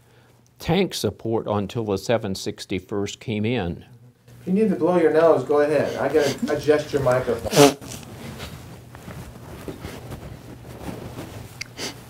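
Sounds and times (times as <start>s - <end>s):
tissue rubbing on nose: 5.9s - 12.0s.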